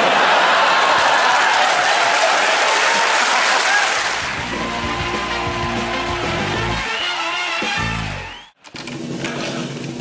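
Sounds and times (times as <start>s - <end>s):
audience applauding: 0.0s - 6.0s
instrumental theme music: 4.3s - 8.6s.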